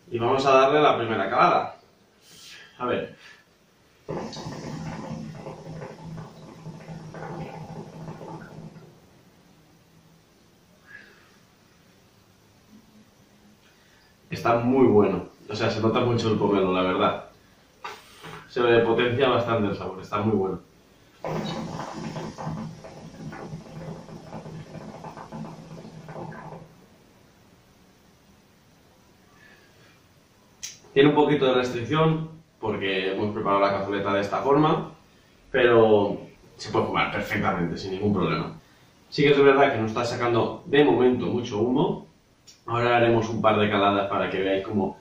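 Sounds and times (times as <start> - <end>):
hookah water bubbling: 3.9 - 13.1, 15.0 - 29.2.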